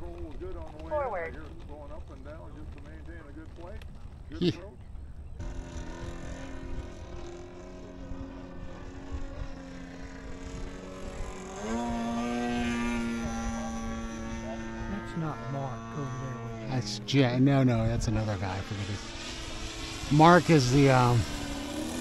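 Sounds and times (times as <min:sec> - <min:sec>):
model jet engine whine: 0:04.9 - 0:22.0.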